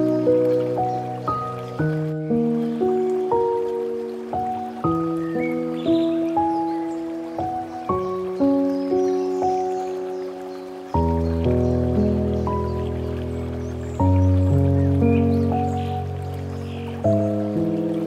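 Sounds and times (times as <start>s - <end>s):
gentle solo piano music: 0.0s - 18.0s.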